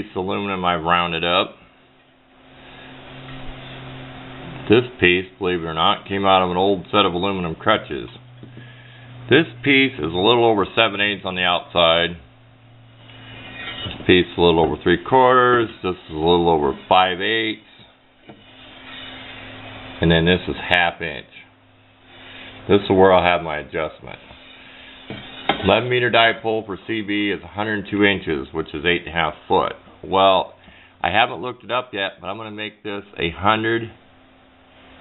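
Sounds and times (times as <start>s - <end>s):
low electrical hum: 0.0s - 35.0s
metal tube sliding and scraping: 12.9s - 20.0s, 24.2s - 26.0s.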